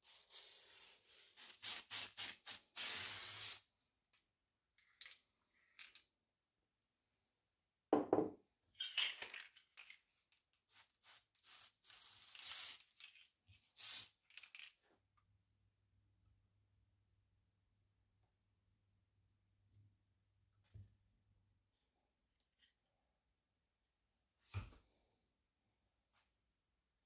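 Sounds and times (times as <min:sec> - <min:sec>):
spray paint can hissing: 0:00.1 - 0:03.7, 0:10.7 - 0:13.1, 0:13.8 - 0:14.4.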